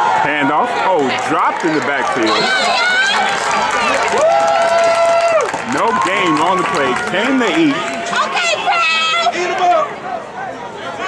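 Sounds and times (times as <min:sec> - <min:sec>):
man speaking: 0:05.7 - 0:07.8.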